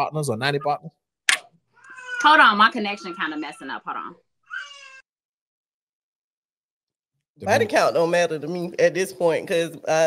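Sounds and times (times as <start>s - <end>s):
garbled video call audio: 0.0s - 4.3s, 7.4s - 10.0s.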